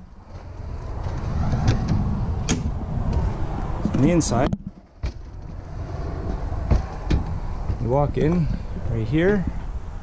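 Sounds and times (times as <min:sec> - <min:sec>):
microphone handling and wind rumble: 0:00.0 - 0:10.0.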